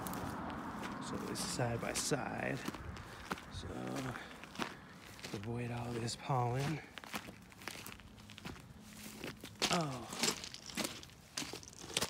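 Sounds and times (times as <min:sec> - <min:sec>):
footsteps crunching on rock: 0:00.0 - 0:12.0.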